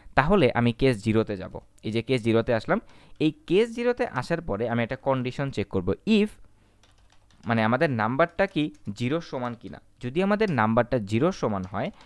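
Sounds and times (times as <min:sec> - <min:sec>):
man speaking: 0:00.2 - 0:06.4, 0:07.4 - 0:12.0
keyboard keystrokes: 0:06.8 - 0:07.6, 0:08.2 - 0:09.8.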